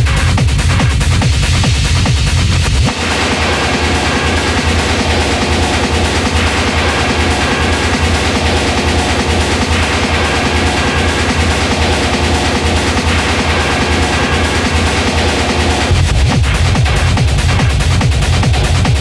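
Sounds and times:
hard techno music: 0.0 - 19.0.

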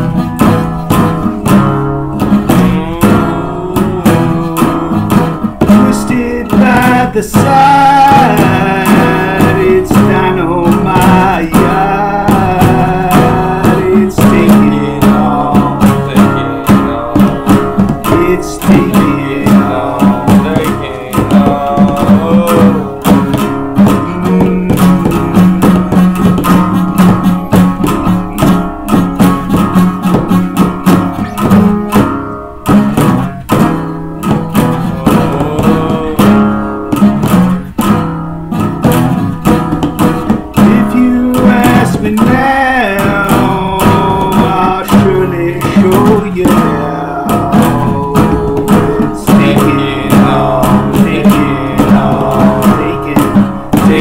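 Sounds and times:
bending lead guitar melody: 0.0 - 54.0
rock band music: 0.0 - 54.0.

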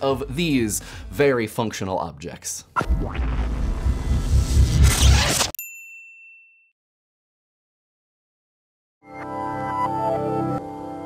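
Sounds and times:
theme music: 2.8 - 5.4.

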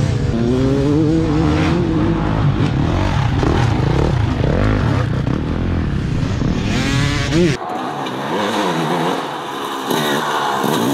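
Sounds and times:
dirt bike engine revving: 0.0 - 10.9.

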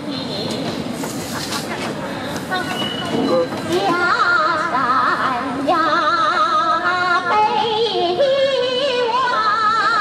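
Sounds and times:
woman singing with vibrato: 3.8 - 10.0.

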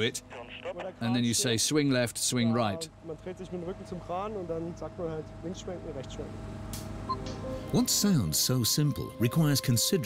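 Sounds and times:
man talking: 0.0 - 6.3, 7.7 - 10.0.

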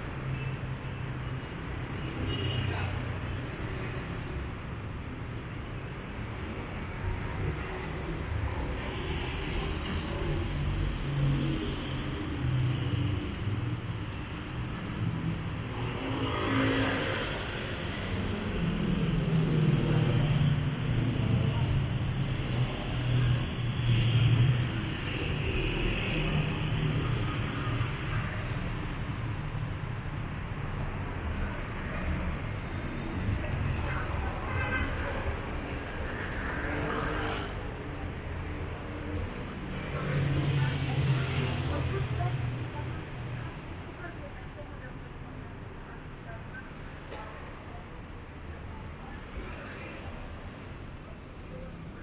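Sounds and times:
cars passing on street: 0.0 - 52.0.

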